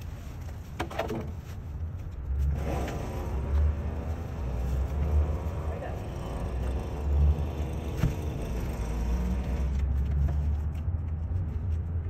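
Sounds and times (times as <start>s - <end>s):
vehicle engine rumbling: 0.0s - 12.0s.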